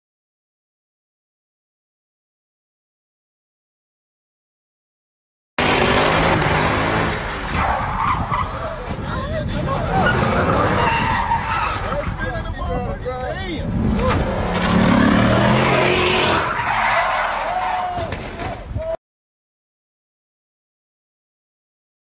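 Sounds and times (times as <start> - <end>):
car engine revving: 5.6 - 9.0, 13.6 - 16.6
tyres squealing: 7.5 - 12.5.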